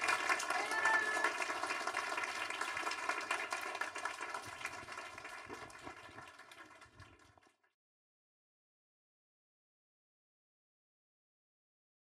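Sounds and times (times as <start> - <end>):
audience applauding: 0.0 - 7.6.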